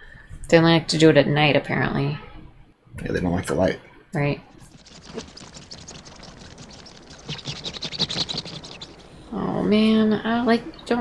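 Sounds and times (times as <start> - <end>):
rapid creature clicking and chattering: 4.5 - 9.2.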